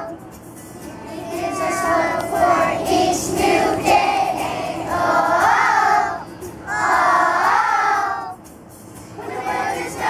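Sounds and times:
children singing together: 0.9 - 8.4, 9.2 - 10.0.

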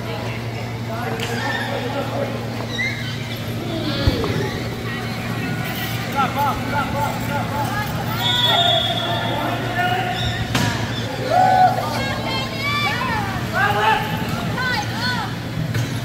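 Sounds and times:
distant voices: 0.0 - 15.7
steady low hum: 0.0 - 16.0.

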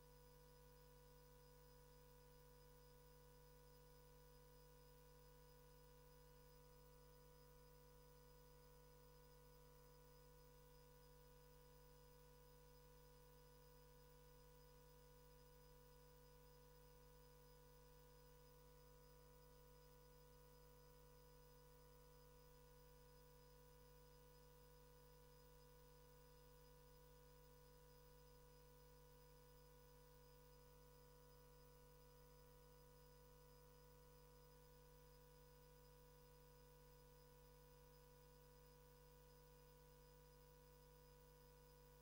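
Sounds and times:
faint steady hum: 0.0 - 42.0.

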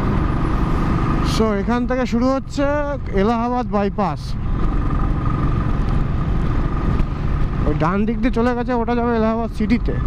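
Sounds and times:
motorcycle engine drone: 0.0 - 10.0
wind and road noise: 0.0 - 10.0
man speaking: 1.2 - 4.4, 7.6 - 10.0.

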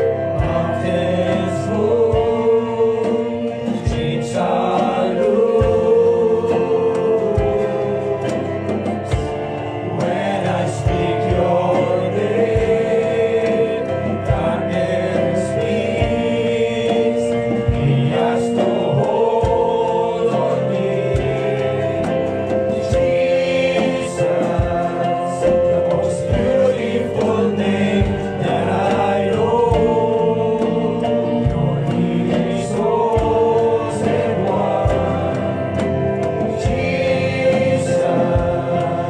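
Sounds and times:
instrumental accompaniment: 0.0 - 39.0
low thumps: 0.0 - 39.0
men singing gospel song: 0.0 - 39.0.

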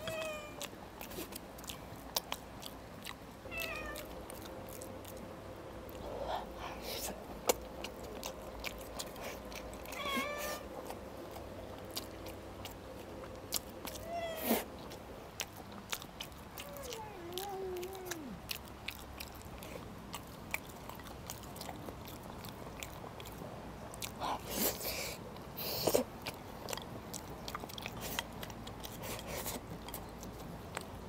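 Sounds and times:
cat meowing: 0.0 - 0.6, 3.5 - 4.1, 9.9 - 10.7, 14.0 - 14.7, 16.6 - 18.4
close-up chewing: 0.0 - 31.0.

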